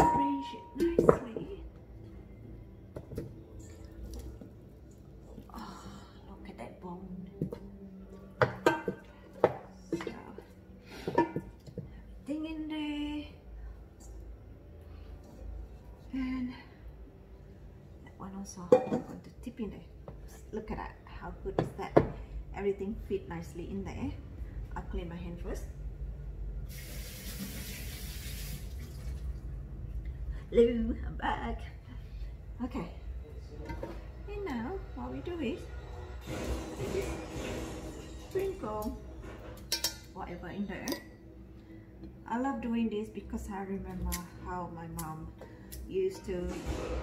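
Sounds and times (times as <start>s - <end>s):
tap water running: 26.7s - 29.4s.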